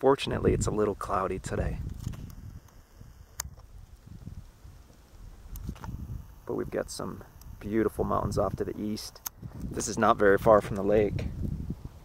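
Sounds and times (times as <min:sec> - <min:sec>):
wind buffeting microphone: 0:00.3 - 0:12.0
sharp click: 0:05.5 - 0:06.0, 0:09.1 - 0:09.7.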